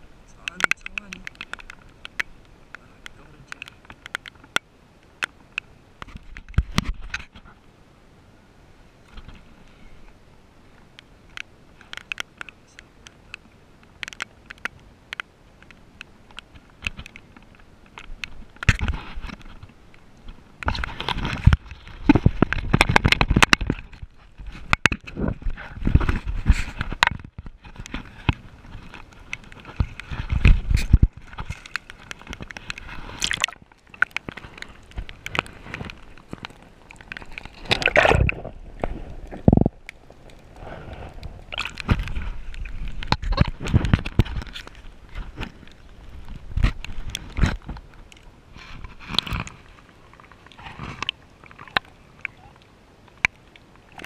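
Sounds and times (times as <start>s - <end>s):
water sloshing: 16.6s - 54.0s
camera handling rubbing and knocks: 20.6s - 38.3s, 41.6s - 47.8s.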